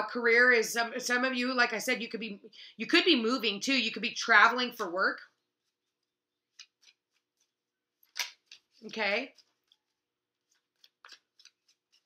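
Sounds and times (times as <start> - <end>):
faint clicks of cards handled: 8.0 - 9.9, 10.5 - 12.0.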